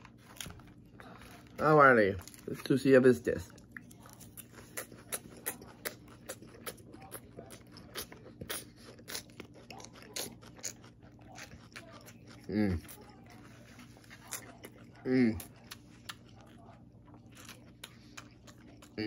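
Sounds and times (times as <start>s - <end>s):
person chewing crunchy salad: 3.4s - 19.0s.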